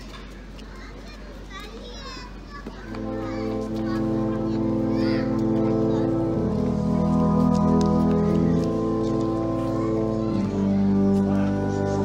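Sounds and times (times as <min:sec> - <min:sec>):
children's voices and chatter: 0:00.0 - 0:12.0
horn orchestra holding a chord: 0:02.9 - 0:12.0.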